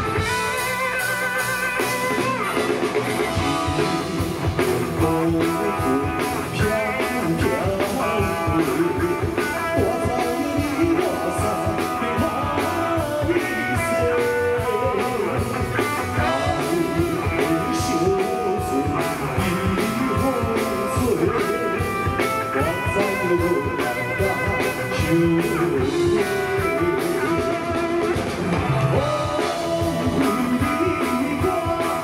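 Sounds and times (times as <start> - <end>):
live band playing: 0.0 - 32.0
steady drum beat: 0.0 - 32.0
man singing: 3.3 - 32.0.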